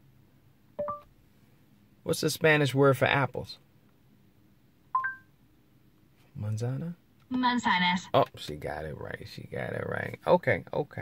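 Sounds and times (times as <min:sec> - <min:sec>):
two-tone electronic chime: 0:05.0 - 0:05.3.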